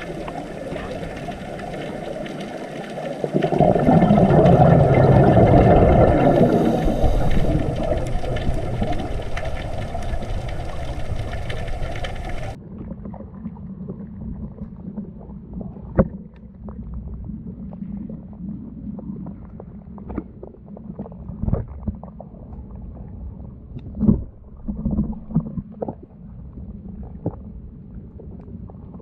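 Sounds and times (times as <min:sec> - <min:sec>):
dull underwater noise: 0:00.0 - 0:29.0
underwater rumble and hiss: 0:00.0 - 0:29.0.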